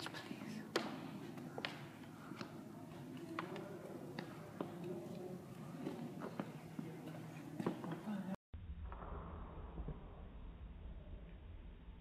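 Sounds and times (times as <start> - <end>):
footsteps walking slowly: 0.0 - 8.2
faint background noise: 0.0 - 8.4.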